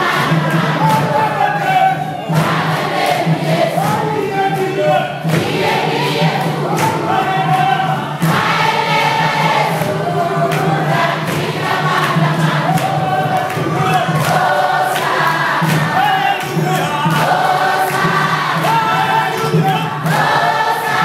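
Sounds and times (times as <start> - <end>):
congregation singing: 0.0 - 21.0
sharp rhythmic hits: 0.0 - 21.0.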